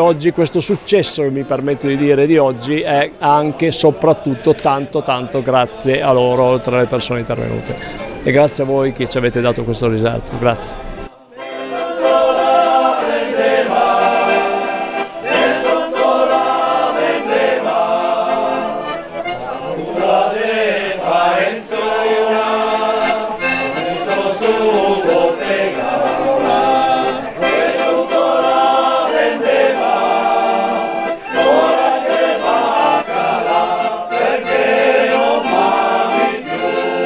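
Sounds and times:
men's choir singing: 1.6 - 7.8, 10.7 - 37.0.

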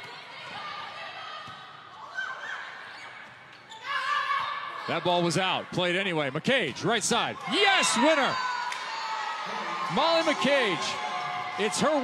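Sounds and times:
murmur of arena crowd: 0.0 - 12.0.

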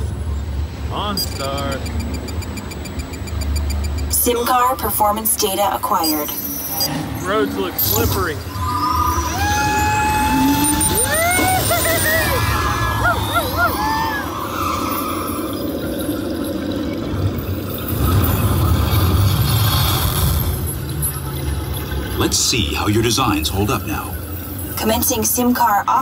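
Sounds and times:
ride vehicle rumbling on track: 0.0 - 26.0
high electronic tones and whoops: 8.4 - 15.9.

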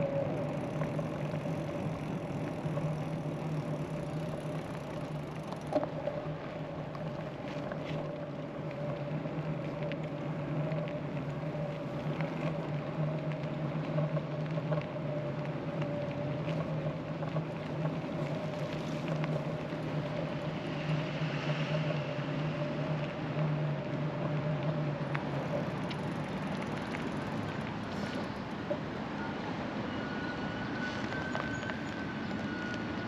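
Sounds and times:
electric bike hum: 0.0 - 33.0
tyres rolling on pavement: 0.0 - 33.0.

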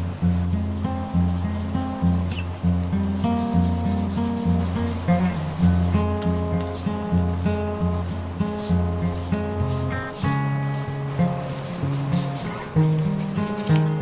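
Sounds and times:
sandpaper rubbing on wood: 0.2 - 14.0.

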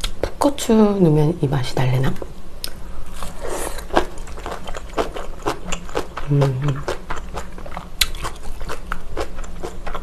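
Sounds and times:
chewing crunchy food: 2.6 - 10.0.

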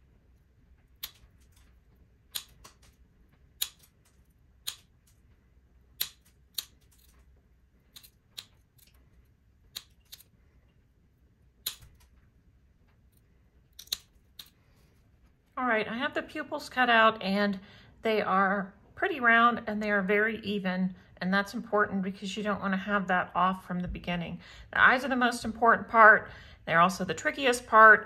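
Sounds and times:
glass nippers snapping glass: 13.8 - 14.5.

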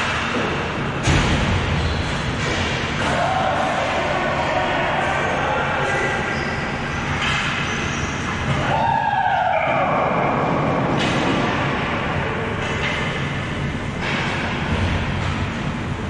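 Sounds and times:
rumbling arena room noise: 0.0 - 16.0.

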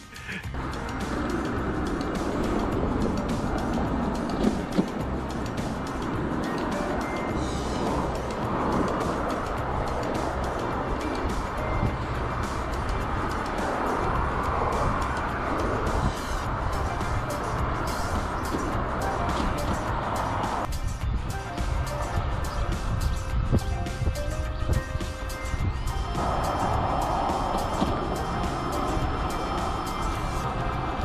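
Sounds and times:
music playing: 0.0 - 31.0
road traffic: 0.0 - 31.0
wind rumbling on microphone: 0.5 - 31.0.

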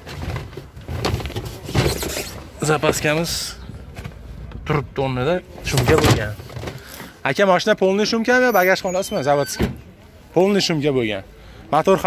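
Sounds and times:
scraping rustling in car boot: 0.0 - 3.3
man speaking: 7.2 - 12.0.

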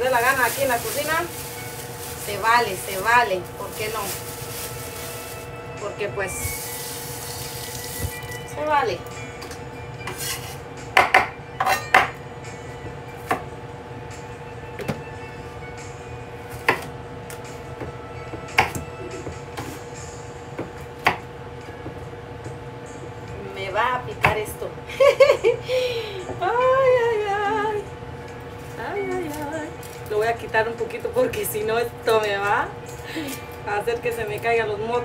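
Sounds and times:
knife chopping on cutting board: 16.6 - 16.9, 18.5 - 18.8, 20.6 - 21.2.

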